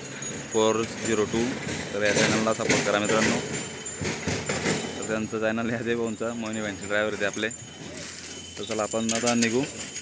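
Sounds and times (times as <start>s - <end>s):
man talking: 0.5s - 3.5s, 5.0s - 7.6s, 8.6s - 9.8s.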